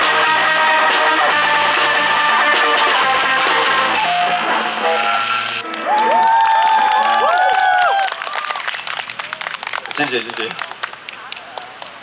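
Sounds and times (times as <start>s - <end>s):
swooping pitched tones: 0.0s - 5.6s
rock band with electric guitars: 0.0s - 5.9s
scattered applause: 5.4s - 12.0s.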